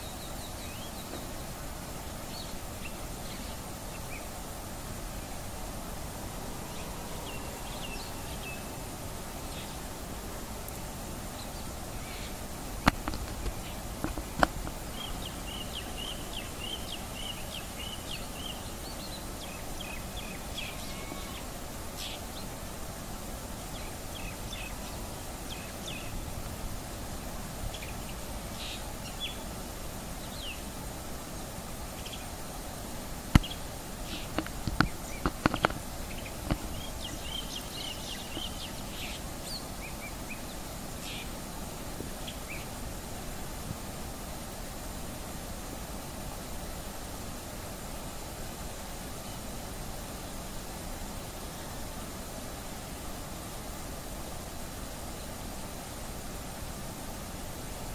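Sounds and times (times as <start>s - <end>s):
background hiss: 0.0s - 57.9s.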